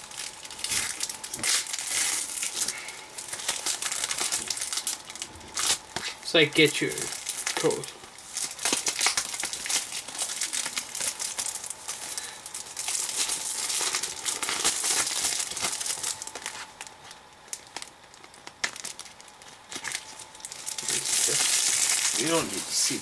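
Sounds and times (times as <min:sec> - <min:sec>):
packaging crinkling and rustling: 0:00.0 - 0:23.0.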